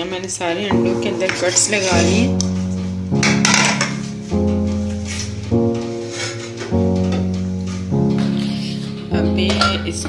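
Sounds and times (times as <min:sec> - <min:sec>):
plucked string notes: 0:00.6 - 0:10.0.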